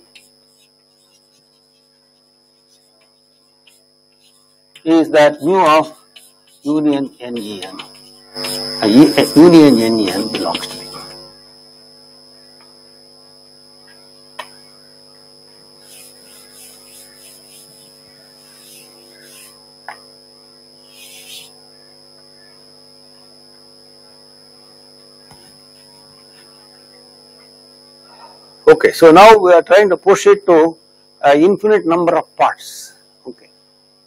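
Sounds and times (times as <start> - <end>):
chalk scratching on blackboard: 0.0 - 11.2, 15.7 - 19.7, 20.8 - 21.6
rub against blackboard: 0.0 - 11.2, 15.8 - 19.6, 20.8 - 21.6
electrical mains hum: 0.0 - 34.0.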